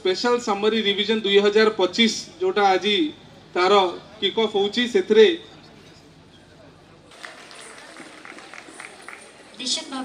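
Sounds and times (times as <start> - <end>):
distant indistinct voices: 0.0 - 10.0.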